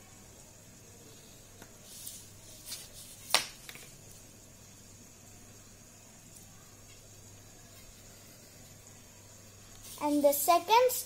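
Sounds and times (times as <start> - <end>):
low steady hum: 0.0 - 10.8.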